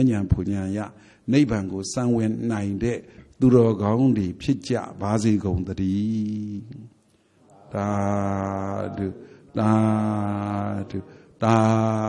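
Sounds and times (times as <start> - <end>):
man chanting slowly: 0.0 - 12.0.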